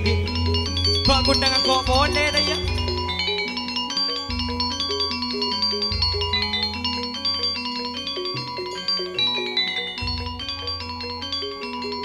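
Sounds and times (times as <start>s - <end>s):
deep bass notes: 0.0s - 3.2s
ringing pitched melody: 0.0s - 12.0s.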